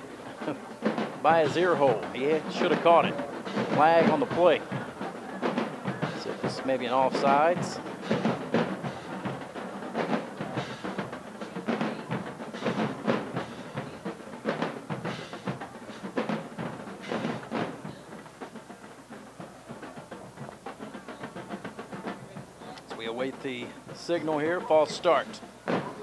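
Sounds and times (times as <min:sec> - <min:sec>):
drums playing a beat: 0:00.0 - 0:26.0.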